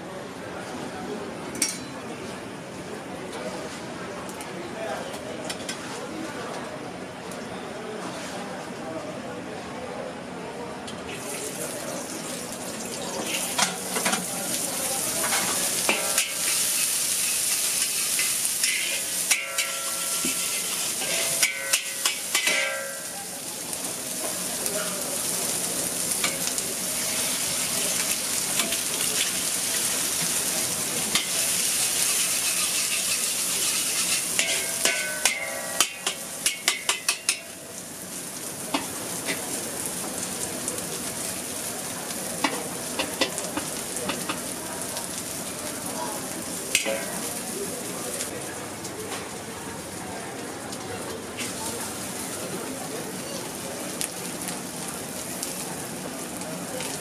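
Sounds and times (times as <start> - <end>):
food sizzling in wok: 11.1 - 48.4, 51.2 - 57.0
metal spatula scraping wok: 15.2 - 23.1, 31.1 - 37.4.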